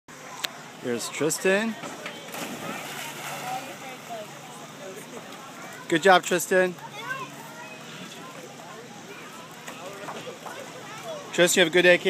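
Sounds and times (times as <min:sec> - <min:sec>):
faint voices: 0:00.1 - 0:12.0
faint distant splash: 0:01.8 - 0:05.3.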